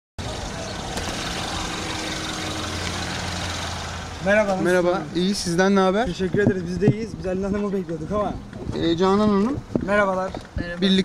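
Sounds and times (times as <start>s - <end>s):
car engine hum: 0.2s - 6.3s
street noise: 0.2s - 11.0s.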